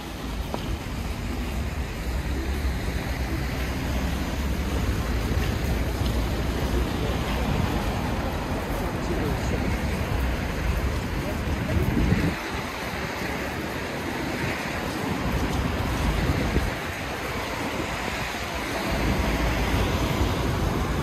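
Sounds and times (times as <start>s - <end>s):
car traffic on slushy road: 0.0s - 21.0s
murmur of voices: 0.2s - 21.0s
wind rumble on microphone: 9.2s - 21.0s.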